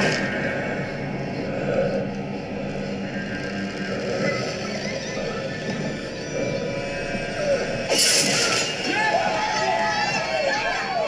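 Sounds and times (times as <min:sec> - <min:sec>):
tense film music: 0:00.0 - 0:11.0.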